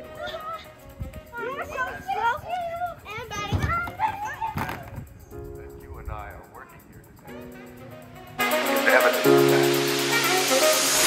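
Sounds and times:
boys shouting and yelling: 0:00.0 - 0:05.2.

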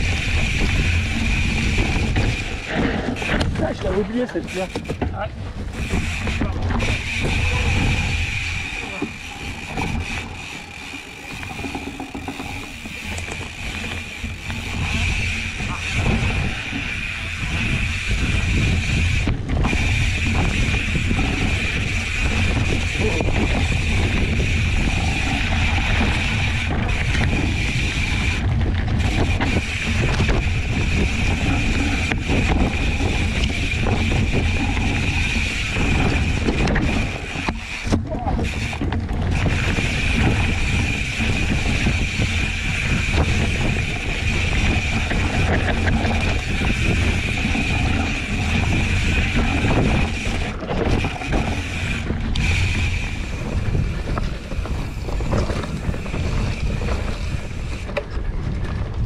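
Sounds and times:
bike rattling on rough ground: 0:00.0 - 0:59.0
bike tyre rumble: 0:00.0 - 0:59.0
wind buffeting microphone: 0:00.0 - 0:59.0.

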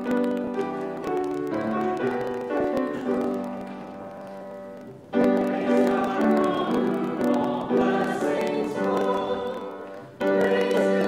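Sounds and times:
choir singing church music: 0:00.0 - 0:11.0.

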